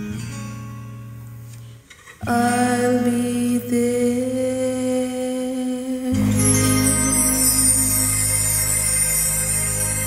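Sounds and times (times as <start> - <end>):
karaoke backing track chord: 2.2 - 10.0.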